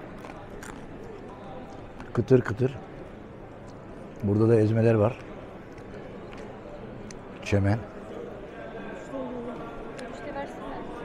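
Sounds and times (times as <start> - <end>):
chips crunching: 0.0 - 2.2
background murmur: 0.0 - 11.0.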